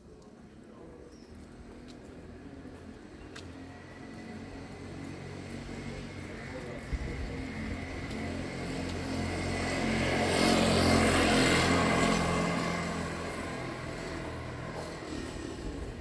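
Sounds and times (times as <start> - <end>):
motor scooter riding past: 1.4 - 16.0.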